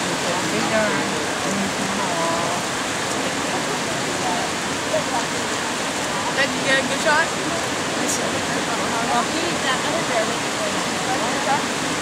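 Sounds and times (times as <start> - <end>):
waterfall rushing: 0.0 - 12.0.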